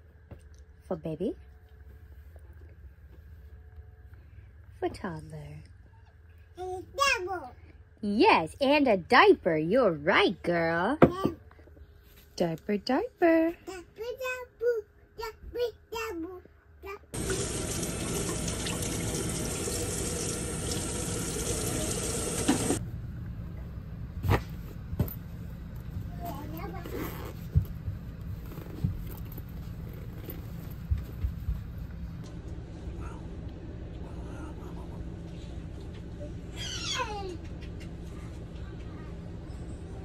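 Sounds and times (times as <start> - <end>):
steady low hum: 0.0 - 15.2, 16.4 - 40.0
running water rushing: 17.2 - 22.8
high-pitched vocal cry: 36.5 - 37.3.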